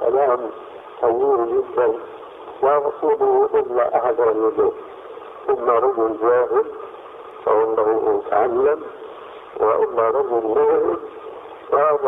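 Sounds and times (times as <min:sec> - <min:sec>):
man talking: 0:00.0 - 0:04.8, 0:05.4 - 0:06.8, 0:07.4 - 0:09.0, 0:09.6 - 0:11.1, 0:11.7 - 0:12.0.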